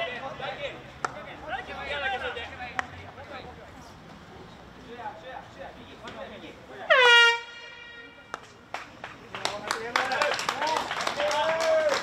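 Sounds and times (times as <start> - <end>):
stadium horn blast: 6.9 - 8.4.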